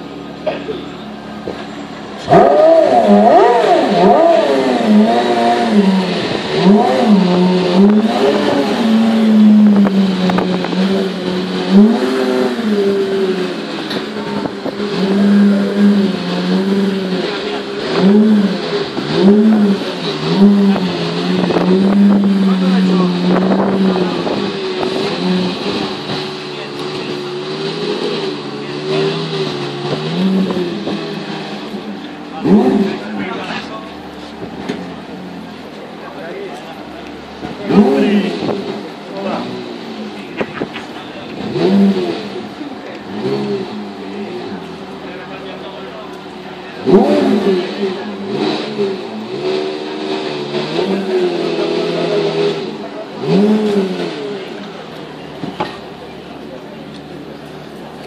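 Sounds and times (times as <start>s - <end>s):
sports car engine revving: 0.0s - 58.0s.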